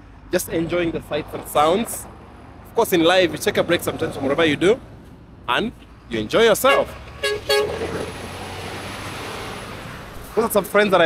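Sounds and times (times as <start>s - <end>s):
truck passing on highway: 6.1s - 11.0s.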